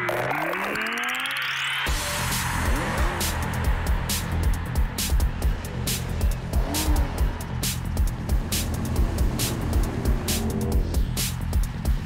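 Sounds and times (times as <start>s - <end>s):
car engine and driving: 0.0s - 12.0s
upbeat music with drum beat: 1.8s - 12.0s.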